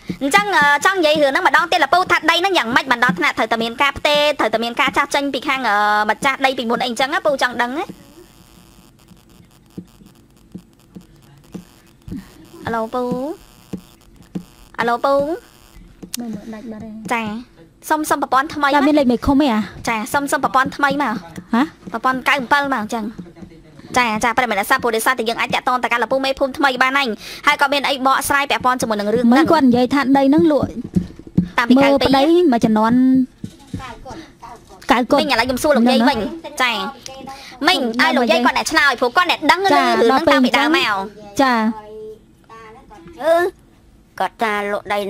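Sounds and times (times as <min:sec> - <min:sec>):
low electrical mains hum: 0:00.0 - 0:45.0
woman talking into a microphone: 0:00.1 - 0:08.3, 0:12.1 - 0:13.4, 0:14.8 - 0:15.4, 0:17.1 - 0:23.2, 0:23.9 - 0:33.4, 0:34.8 - 0:41.7.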